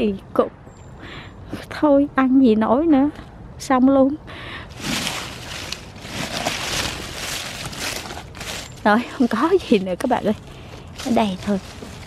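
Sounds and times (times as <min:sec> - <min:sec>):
leaves rustling: 0:04.7 - 0:12.0.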